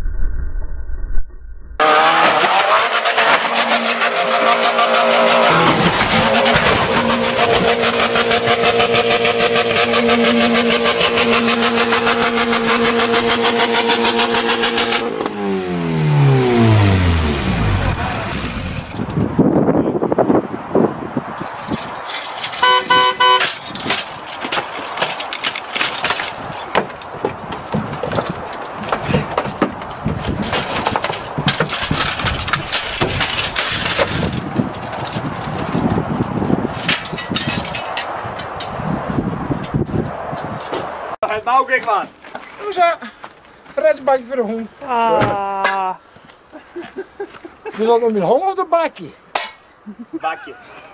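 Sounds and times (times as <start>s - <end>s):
car horn: 1.8s - 18.9s, 22.6s - 23.6s
car engine revving high: 1.8s - 19.2s
knocks and clatter: 23.4s - 38.8s.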